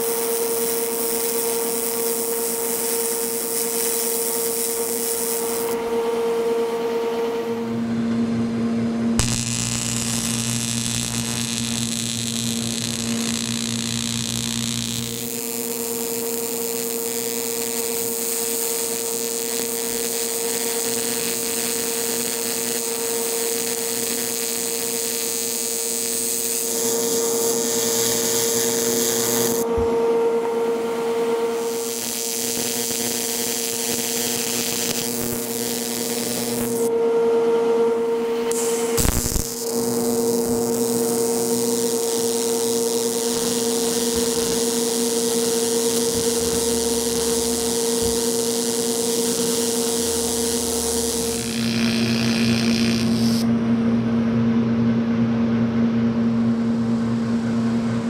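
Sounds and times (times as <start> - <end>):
welding arc buzzing and hissing: 0.0 - 5.9, 9.2 - 29.9, 31.0 - 36.9, 38.2 - 53.5.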